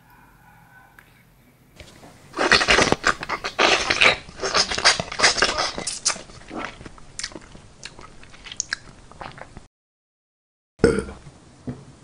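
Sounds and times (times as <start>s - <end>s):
chewing and crunching: 1.8s - 9.7s
mouth clicks and smacks: 1.8s - 9.7s.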